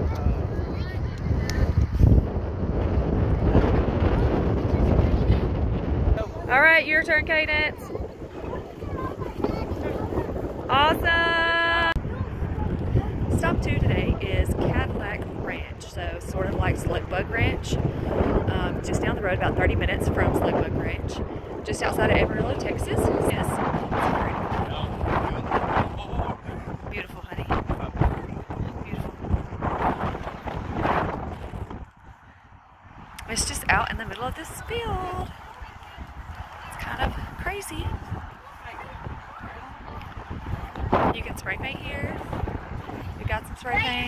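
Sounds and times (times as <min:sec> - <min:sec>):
wind buffeting microphone: 0:00.0 - 0:44.0
faint voices: 0:02.9 - 0:44.0.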